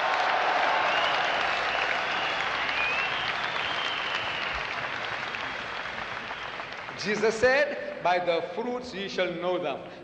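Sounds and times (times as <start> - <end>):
audience applauding: 0.0 - 8.4.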